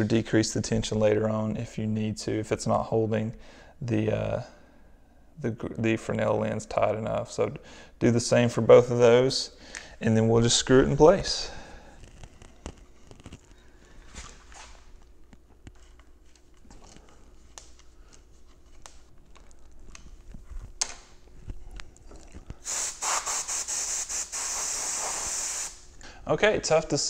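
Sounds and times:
loud spraying hiss: 0:22.6 - 0:25.8.

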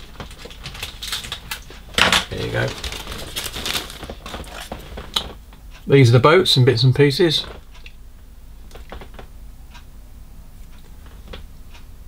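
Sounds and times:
plastic parts rattling in bag: 0:00.0 - 0:05.0.

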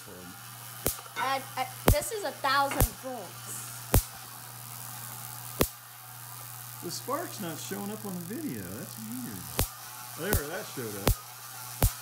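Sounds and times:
electric spark snaps: 0:00.0 - 0:12.0.

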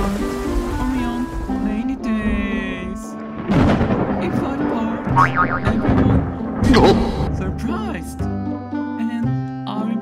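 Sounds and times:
comic wobbling falling effect: 0:05.1 - 0:06.3
cartoon background music: 0:05.1 - 0:08.2
voice: 0:05.2 - 0:08.0.

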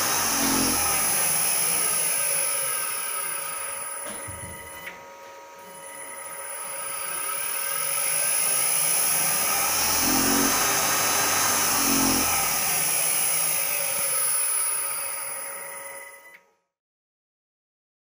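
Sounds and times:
electric motor fan rushing: 0:00.0 - 0:15.8
high motor whine: 0:00.0 - 0:16.3.

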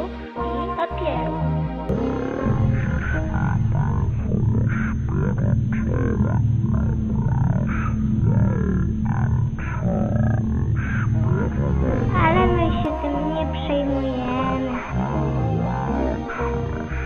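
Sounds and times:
low drone music: 0:00.0 - 0:17.0
person reciting verse: 0:00.0 - 0:17.0
higher voice speaking: 0:11.6 - 0:16.5.

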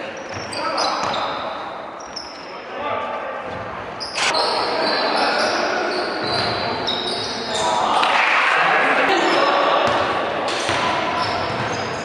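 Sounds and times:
players' voices echoing: 0:00.0 - 0:12.0.

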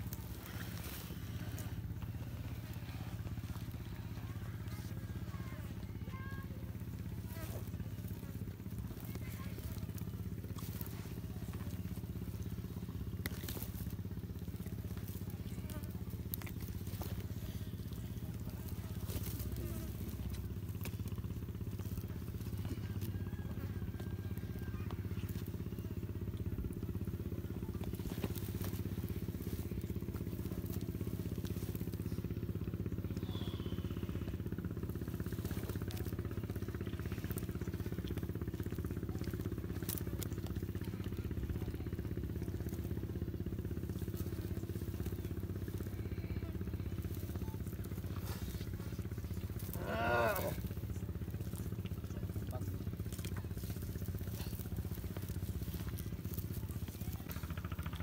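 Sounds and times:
flesh and bone crunching: 0:00.0 - 0:58.0
steady low hum: 0:00.0 - 0:58.0.

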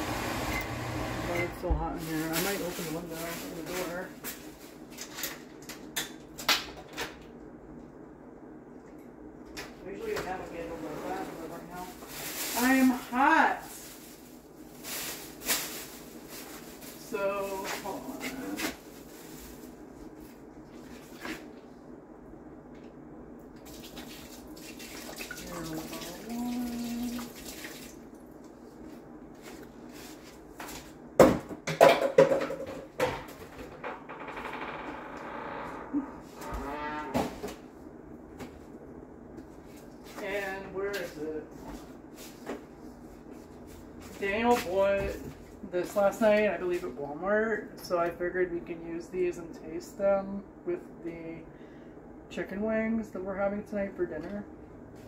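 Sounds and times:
kitchen knocks and clicks: 0:31.2 - 0:33.9.

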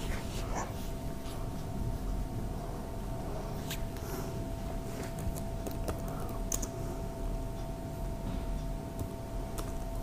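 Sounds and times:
faint steady hum: 0:00.0 - 0:10.0
computer keyboard typing: 0:05.1 - 0:06.8, 0:09.0 - 0:10.0.

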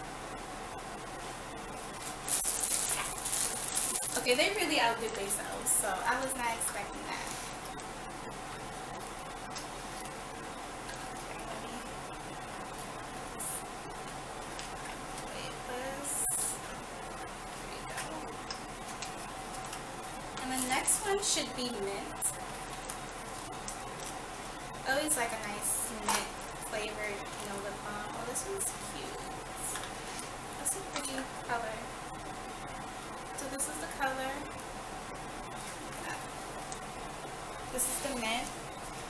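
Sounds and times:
steady room hiss: 0:00.0 - 0:39.0
plastic bag crinkling: 0:02.0 - 0:04.5.

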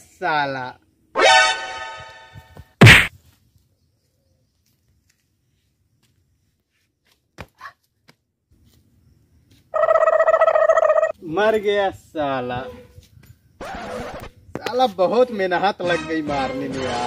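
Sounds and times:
body thudding onto dirt: 0:02.5 - 0:03.2.

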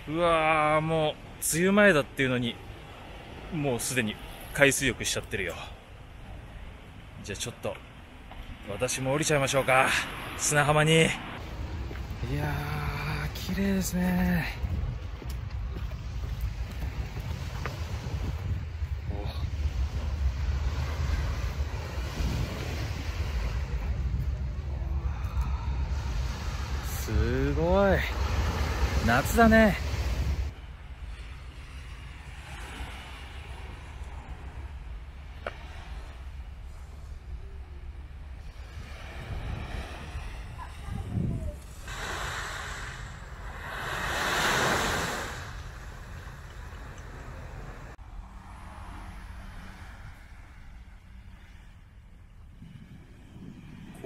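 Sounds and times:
waves washing: 0:00.0 - 0:54.0
wind rumbling on microphone: 0:02.5 - 0:54.0.

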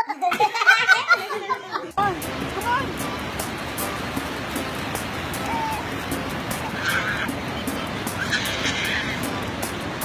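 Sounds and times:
small waves breaking: 0:02.2 - 0:10.0
toddler squealing: 0:05.4 - 0:05.9, 0:06.8 - 0:07.3, 0:08.2 - 0:09.2.

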